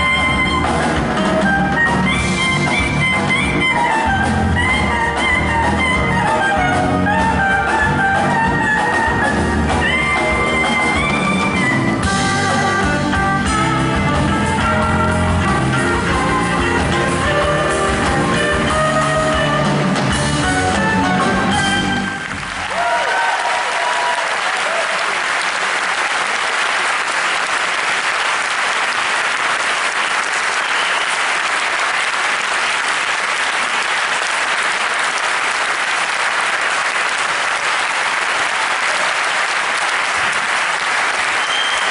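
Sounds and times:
live band playing: 0.0s - 23.0s
audience applauding: 22.0s - 41.9s.

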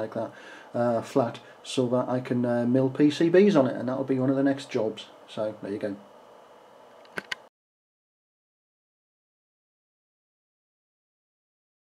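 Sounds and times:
faint room hiss: 0.0s - 7.4s.

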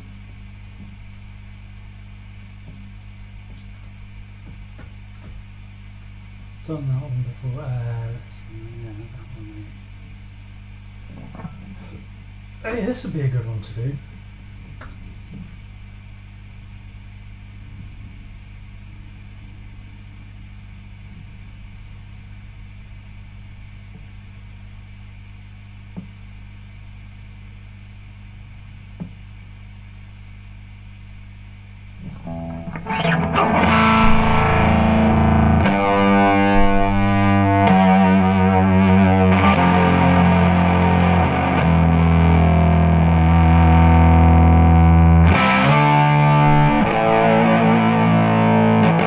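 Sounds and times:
low electrical hum: 0.0s - 49.0s
distorted electric guitar strumming: 32.0s - 49.0s.

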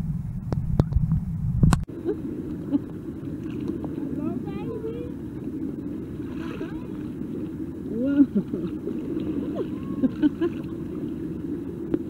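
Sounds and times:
motorboats rumbling: 0.0s - 12.0s
water lapping: 1.9s - 12.0s.

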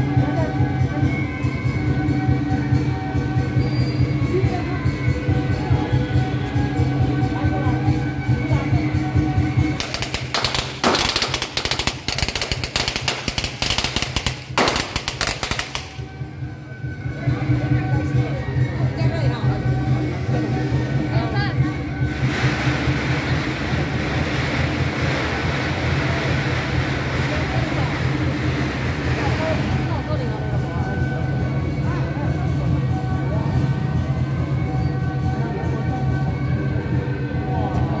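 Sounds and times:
people talking: 0.0s - 10.4s, 15.8s - 38.0s
truck engine humming: 7.8s - 38.0s
firecrackers crackling: 9.6s - 16.4s, 22.1s - 29.9s.

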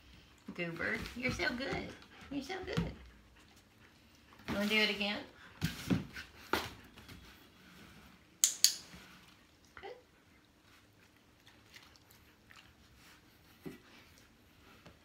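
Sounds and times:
paws tapping on cardboard box: 0.8s - 3.7s
dog-training clicker clicks: 8.4s - 8.8s.

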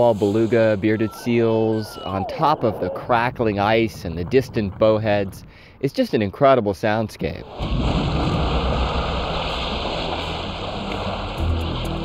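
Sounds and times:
sea water splashing: 7.4s - 12.0s
background music: 9.1s - 12.0s.

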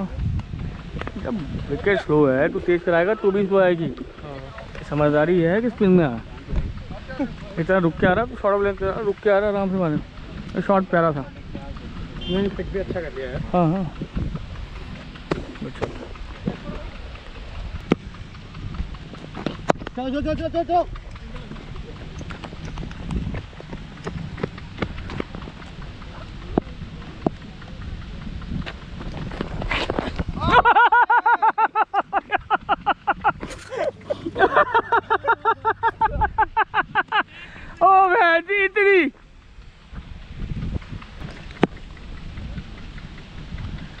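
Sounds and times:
wind rumble on microphone: 0.0s - 44.0s
footsteps on dirt: 13.4s - 26.4s.

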